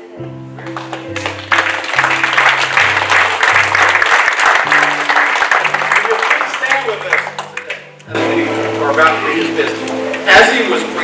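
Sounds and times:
scattered applause: 0.6s - 8.2s
band playing held chord: 0.7s - 11.0s.

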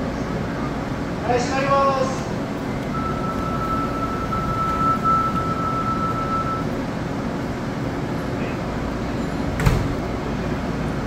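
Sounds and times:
subway train humming: 0.0s - 11.0s
single-pitched warning tone: 2.8s - 7.0s.

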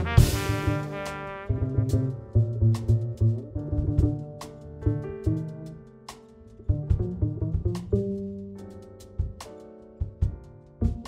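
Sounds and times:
trumpet: 0.0s - 4.2s
plucked upright bass: 0.0s - 9.4s, 10.6s - 11.0s
drums: 0.0s - 11.0s.

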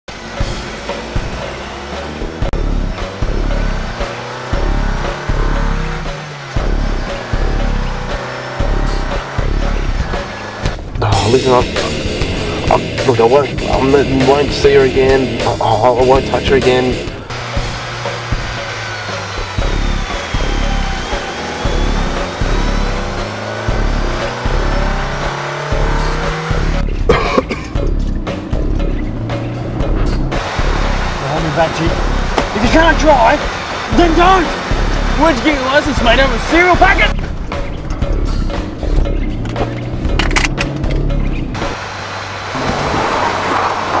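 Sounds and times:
car engines revving: 0.0s - 44.0s
vehicle noise: 0.0s - 44.0s
background music: 0.1s - 44.0s
steady rushing noise: 28.4s - 37.5s, 41.0s - 44.0s.

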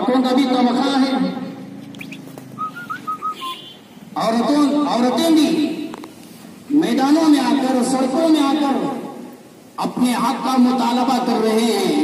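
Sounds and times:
short whistled notes: 2.0s - 3.7s
man speaking: 4.2s - 5.9s.

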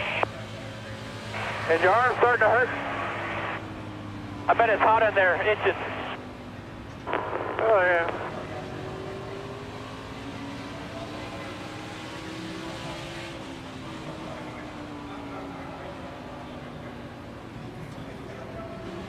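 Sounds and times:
race car engine at speed: 0.0s - 19.0s.

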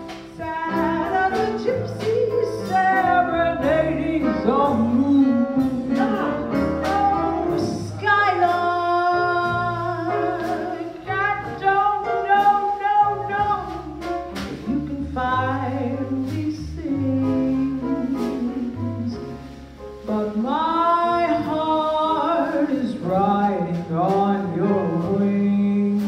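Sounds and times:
low instrumental accompaniment: 0.0s - 26.0s
woman singing jazz ballad: 0.0s - 26.0s.

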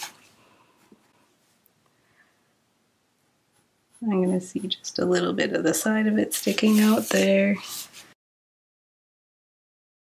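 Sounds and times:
pencil strokes on paper: 3.5s - 4.8s, 5.5s - 8.2s.

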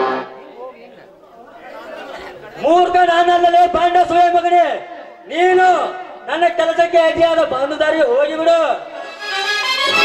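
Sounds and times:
audience chatter: 0.0s - 3.0s
loud voice over loudspeakers: 2.6s - 9.1s.

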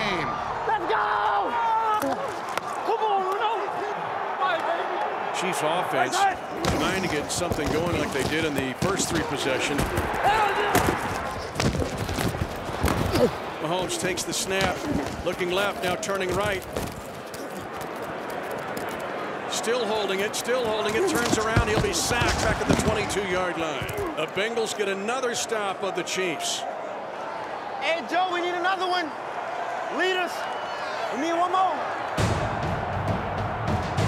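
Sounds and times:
men yelling in celebration: 0.0s - 6.6s, 8.9s - 11.2s
stadium crowd din: 0.0s - 34.0s.

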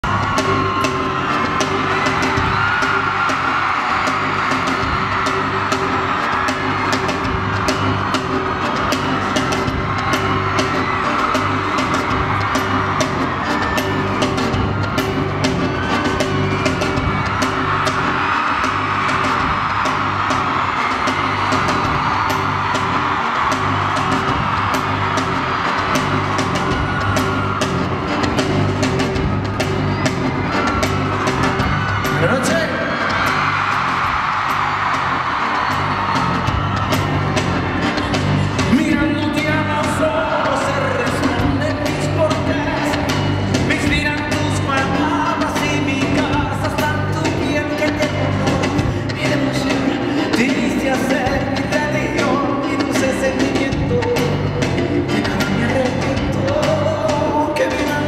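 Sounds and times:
crowd screaming and cheering: 0.0s - 58.0s
live band music: 0.0s - 58.0s
steady bass pattern: 0.0s - 58.0s.

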